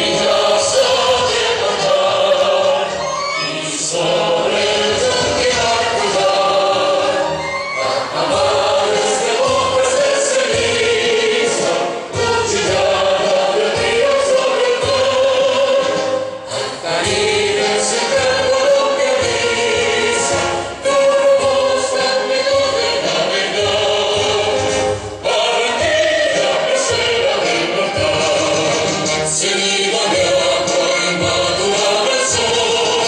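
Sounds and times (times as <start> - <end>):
children singing in unison: 0.0 - 33.0.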